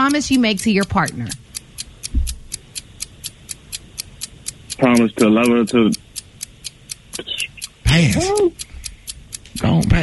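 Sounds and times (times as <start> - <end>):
timer ticking: 0.0 - 10.0
low thump: 2.1 - 2.4.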